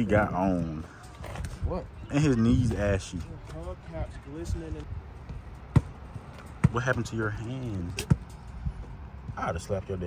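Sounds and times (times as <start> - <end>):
basketball bouncing on pavement: 4.4 - 10.0.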